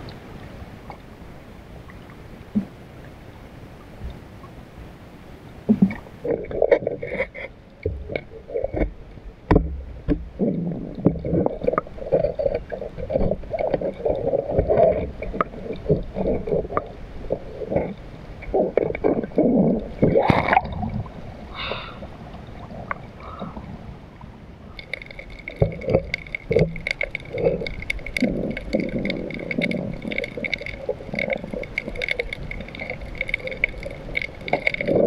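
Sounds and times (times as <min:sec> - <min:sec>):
water sloshing and gurgling: 0:00.0 - 0:35.0.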